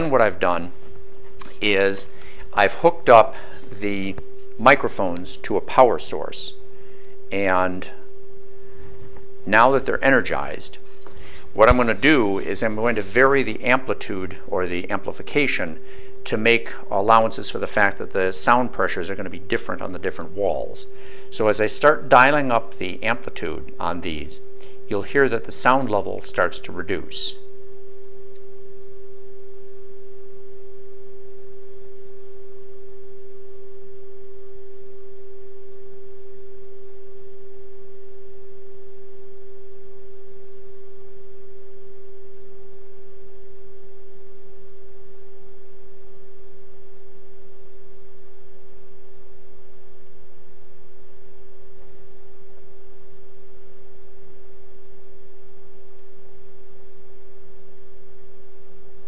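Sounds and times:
steady tone from loudspeaker: 0.0s - 59.0s.

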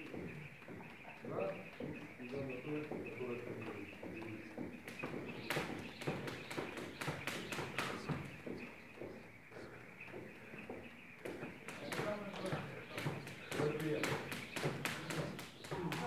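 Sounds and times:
jump rope slapping floor: 0.0s - 1.0s, 1.6s - 16.0s.

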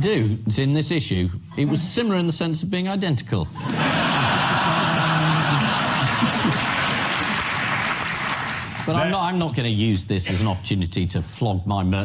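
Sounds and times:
audience laughing: 3.6s - 8.0s
audience applauding: 3.7s - 9.0s.

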